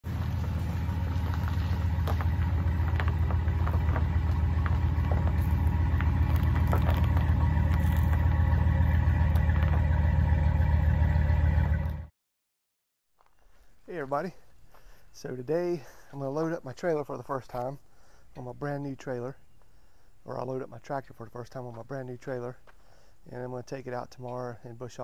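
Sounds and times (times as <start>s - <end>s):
tyres crunching on gravel: 0.0s - 12.0s
truck engine idling: 0.0s - 12.1s.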